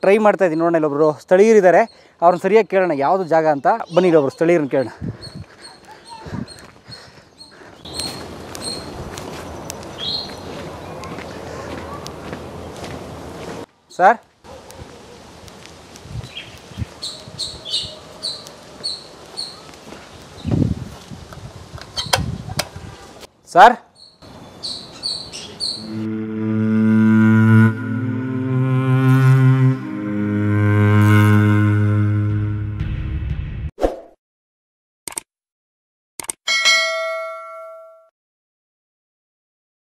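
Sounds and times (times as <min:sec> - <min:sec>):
bird chirping: 0:01.6 - 0:12.8, 0:16.2 - 0:19.7, 0:23.9 - 0:26.1
notification bell chime: 0:36.5 - 0:38.1.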